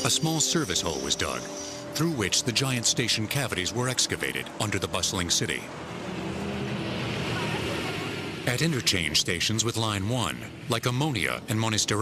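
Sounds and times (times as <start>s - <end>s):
city traffic noise: 0.0s - 12.0s.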